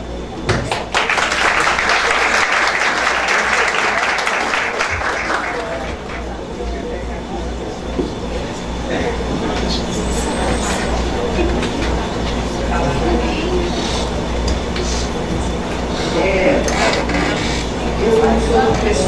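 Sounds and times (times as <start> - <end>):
indistinct chatter: 0.0 - 19.0
steady low hum: 0.0 - 19.0.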